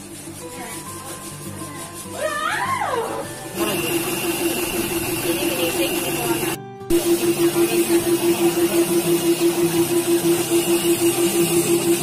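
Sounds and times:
air compressor motor hum: 3.5 - 12.0
paint spray gun hissing: 3.6 - 12.0.

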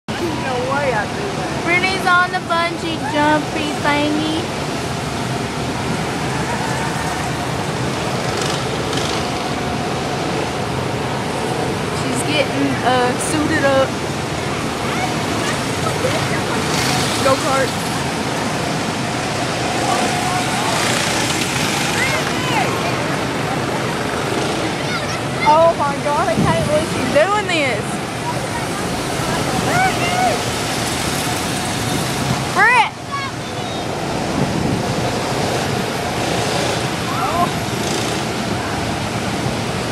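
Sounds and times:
steady rushing noise: 0.1 - 39.9
faint voices: 11.1 - 34.6.

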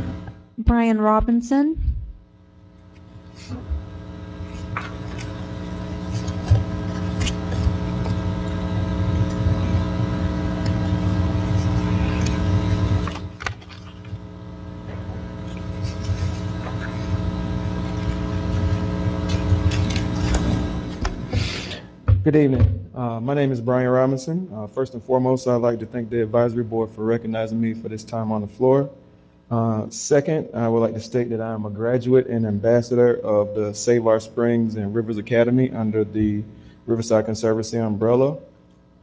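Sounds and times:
multi-tone hum: 0.0 - 39.0.

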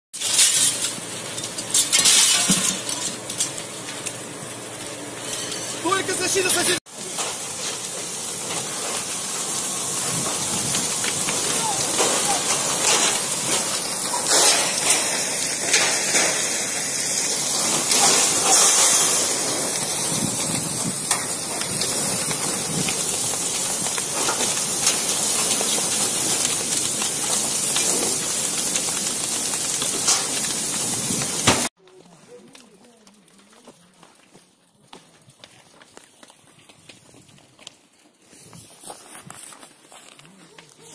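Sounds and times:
fire cracking: 0.1 - 40.9
water jet hissing on fire: 0.2 - 31.7.

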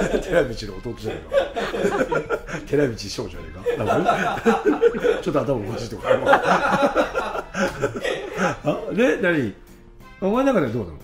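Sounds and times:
men laughing: 0.0 - 9.4
men talking: 0.0 - 11.0.

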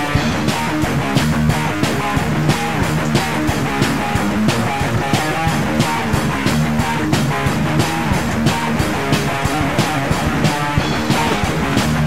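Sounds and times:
distorted electric guitar riff: 0.0 - 12.0
drums keeping a steady beat: 0.0 - 12.0.

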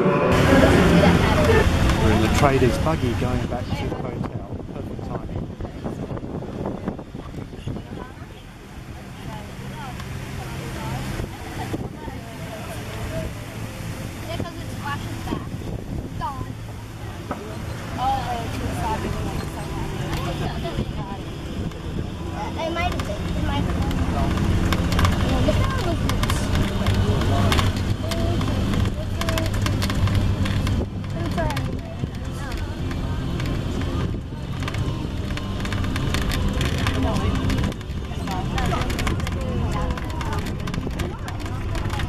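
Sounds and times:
wheels rumbling on pavement: 0.0 - 42.0
wind on microphone: 0.0 - 42.0.

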